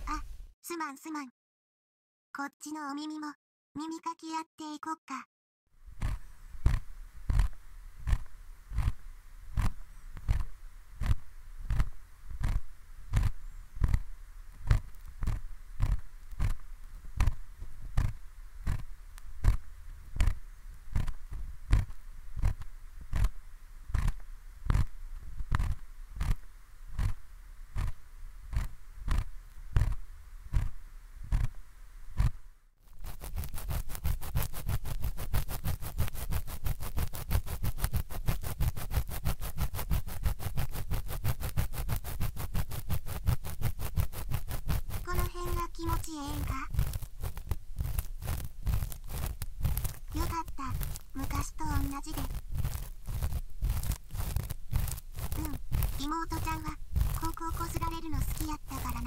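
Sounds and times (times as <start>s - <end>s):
ear pick scraping in ear: 5.9s - 59.0s.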